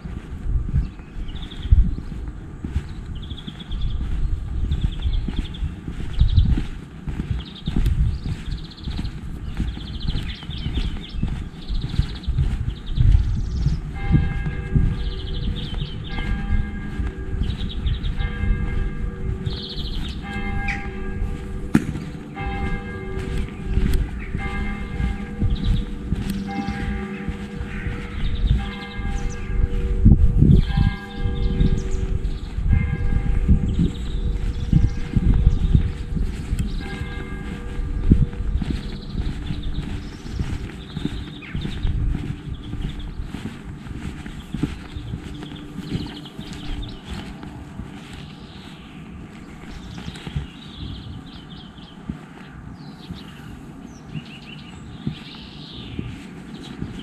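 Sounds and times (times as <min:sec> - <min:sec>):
footsteps on road: 0:00.0 - 0:57.0
church bells ringing: 0:13.9 - 0:49.4.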